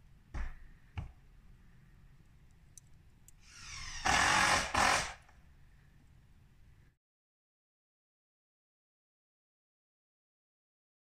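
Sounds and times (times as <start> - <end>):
power tool running in bursts: 3.4 - 5.2.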